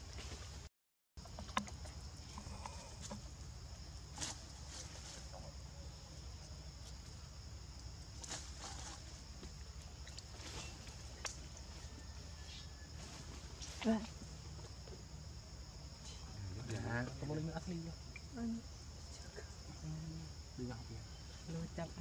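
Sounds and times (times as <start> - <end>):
short rustles or scuffs: 8.2 - 9.5.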